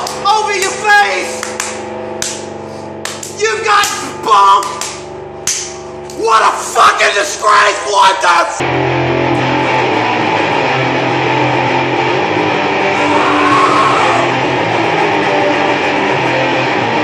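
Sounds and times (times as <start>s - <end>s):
rock electric guitar music: 0.0s - 6.2s, 8.6s - 17.0s.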